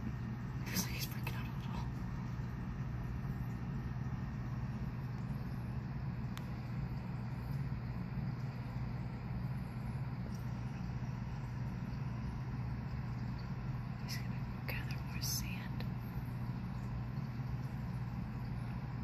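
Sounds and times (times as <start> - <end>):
aquarium equipment humming: 0.0 - 19.0
soft whispers: 0.6 - 2.3, 13.9 - 16.2.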